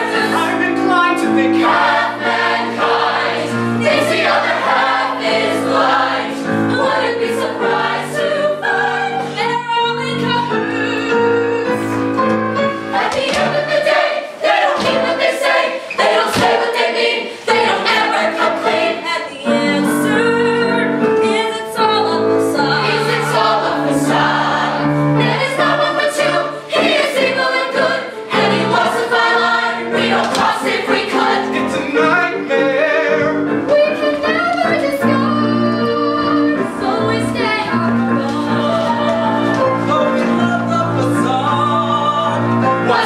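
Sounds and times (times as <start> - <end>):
vocal ensemble singing in harmony: 0.0 - 43.0.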